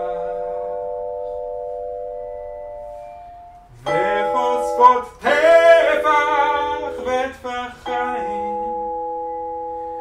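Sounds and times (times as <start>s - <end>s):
vibraphone chord ringing: 0.0s - 10.0s.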